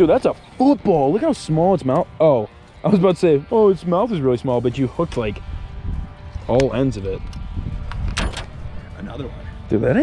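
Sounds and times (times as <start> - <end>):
low steady rumble: 5.0 - 10.0.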